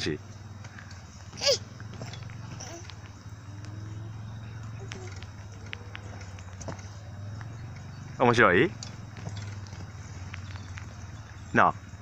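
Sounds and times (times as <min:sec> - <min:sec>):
child squealing: 0:01.3 - 0:03.0.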